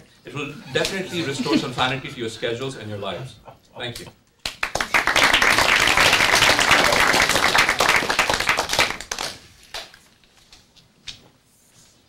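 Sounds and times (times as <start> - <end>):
audience applauding: 4.5 - 9.9.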